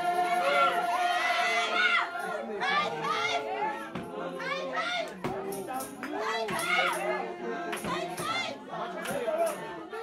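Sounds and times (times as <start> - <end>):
congregation singing and calling out: 0.0 - 10.0.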